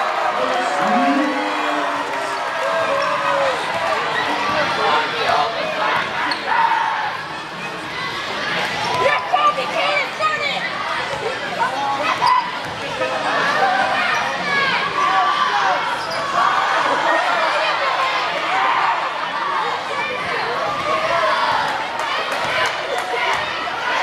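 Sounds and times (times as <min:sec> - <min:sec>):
crowd chattering and shouting: 0:00.0 - 0:24.0.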